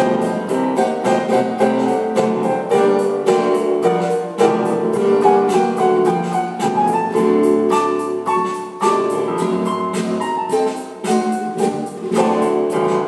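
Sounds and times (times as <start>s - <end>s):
acoustic guitar strumming: 0.0s - 13.0s
electronic keyboard piano tones: 0.0s - 13.0s.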